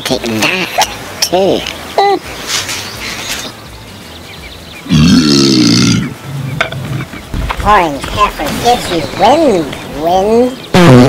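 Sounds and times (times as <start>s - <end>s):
man belching loudly: 4.8s - 6.2s.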